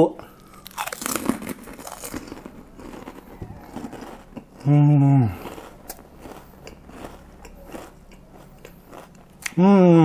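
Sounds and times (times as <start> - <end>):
crunching cracker being chewed: 0.3 - 9.6.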